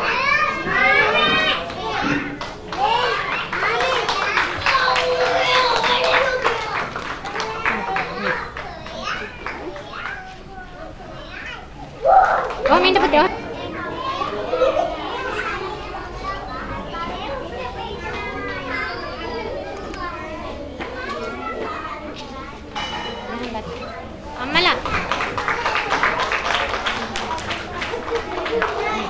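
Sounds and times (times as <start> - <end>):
young children chattering: 0.0 - 29.0.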